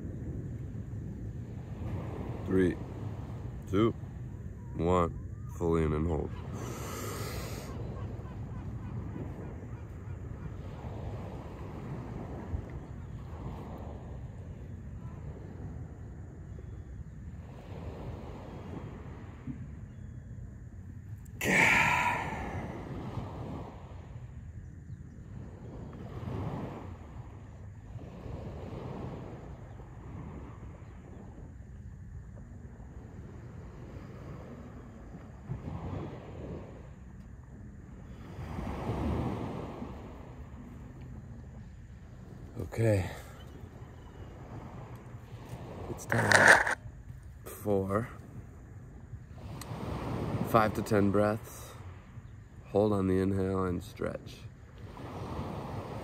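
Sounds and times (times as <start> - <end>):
wind on microphone: 0.0 - 52.6, 54.5 - 56.0
loud breath exhaled: 21.4 - 22.8
surf washing onto shore: 21.4 - 24.1, 38.1 - 41.0, 44.4 - 46.8, 49.3 - 56.0.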